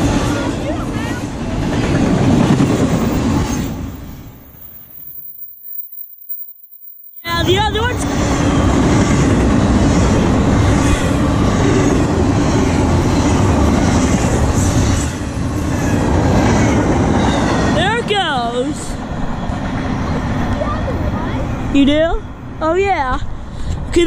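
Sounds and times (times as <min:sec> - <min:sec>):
freight train wheels rolling on rail: 0:00.0 - 0:24.0.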